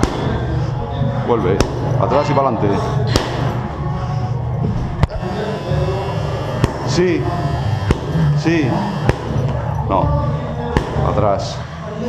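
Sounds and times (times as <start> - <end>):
boxing gloves hitting mitts: 0.0 - 0.5, 1.5 - 2.0, 3.1 - 3.6, 7.8 - 8.2, 8.9 - 9.5, 10.7 - 11.3
background music: 0.0 - 12.0.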